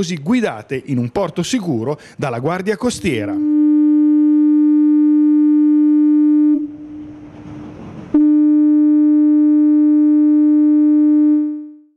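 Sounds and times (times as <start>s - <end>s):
foghorn low steady tone: 3.4s - 7.4s, 8.1s - 11.9s.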